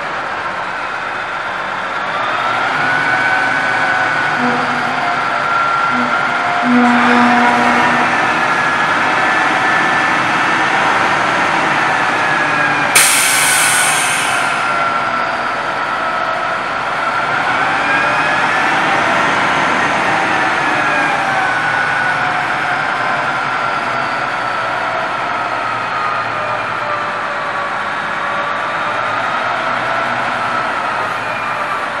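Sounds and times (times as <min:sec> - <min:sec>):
diesel engine running: 0:00.0 - 0:23.5
hydraulic hoist whine: 0:02.1 - 0:15.8
air hiss: 0:13.0 - 0:14.9.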